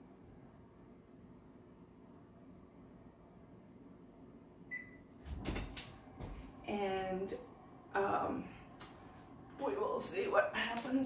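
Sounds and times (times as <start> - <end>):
oven control beep: 4.7 - 5.1.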